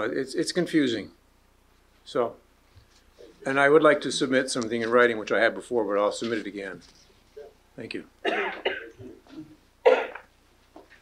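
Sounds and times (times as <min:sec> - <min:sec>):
person coughing: 0:08.2 - 0:10.3
throat clearing: 0:08.2 - 0:10.3.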